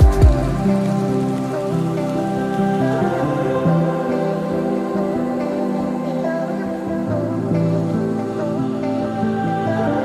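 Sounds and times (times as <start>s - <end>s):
deep bass drum beats: 0.0s - 0.7s.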